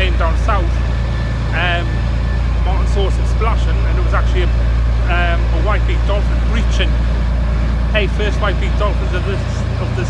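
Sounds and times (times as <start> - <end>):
man speaking: 0.0 - 0.8, 1.5 - 2.0, 2.6 - 7.1, 7.9 - 10.0
motorboat engine droning: 0.0 - 10.0.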